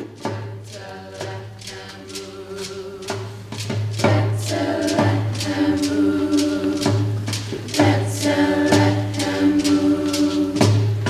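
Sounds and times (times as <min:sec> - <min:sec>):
choir singing held chords: 0:00.0 - 0:11.0
sharp percussive beat: 0:00.0 - 0:11.0.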